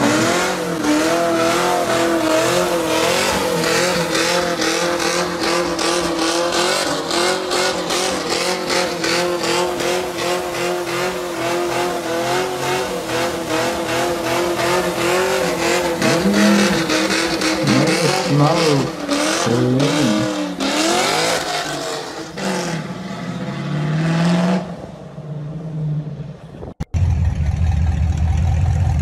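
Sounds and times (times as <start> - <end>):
car engine revving high: 0.0 - 24.9.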